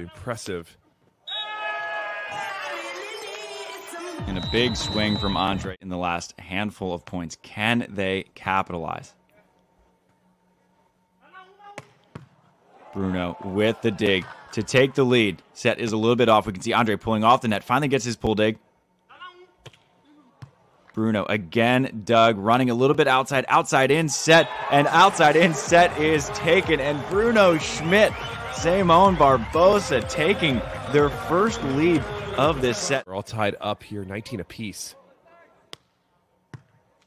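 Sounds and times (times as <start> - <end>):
hand slapping volleyball: 19.6 - 21.0, 35.7 - 37.0.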